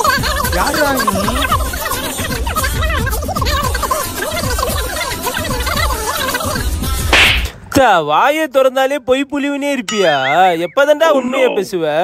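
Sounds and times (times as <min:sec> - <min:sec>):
music with steady beat: 0:06.6 - 0:07.6
sharp swish sound effect: 0:07.1 - 0:07.5
person speaking: 0:09.9 - 0:11.8.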